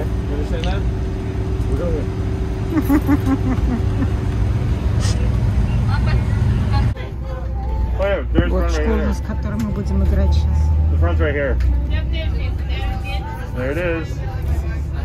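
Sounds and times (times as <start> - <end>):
bus engine and road drone: 0.0 - 15.0.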